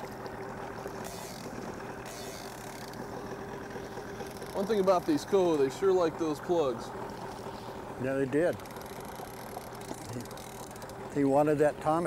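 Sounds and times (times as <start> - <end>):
boat engine humming: 0.0 - 12.0
fishing reel ratchet clicking: 1.0 - 3.1, 4.2 - 5.3, 8.6 - 11.0.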